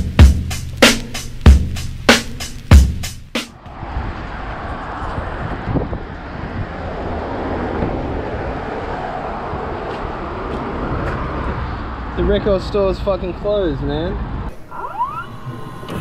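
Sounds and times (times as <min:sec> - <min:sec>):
music beat: 0:00.0 - 0:03.6
road traffic passing: 0:00.0 - 0:16.0.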